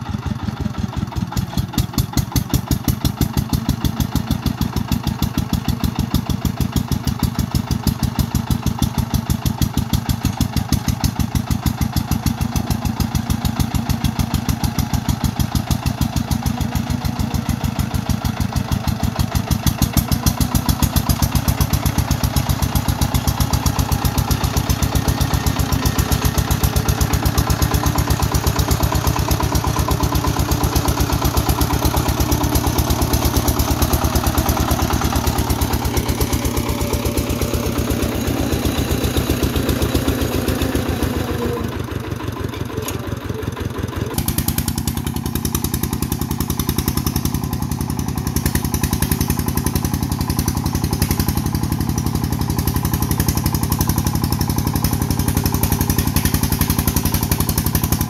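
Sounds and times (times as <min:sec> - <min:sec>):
diesel engine chugging: 0:00.0 - 0:58.0.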